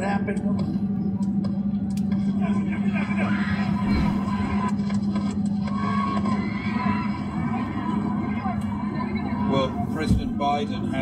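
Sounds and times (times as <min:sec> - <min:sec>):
low drone of moving car: 0:00.0 - 0:11.0
crowd screaming and shouting: 0:03.0 - 0:09.5.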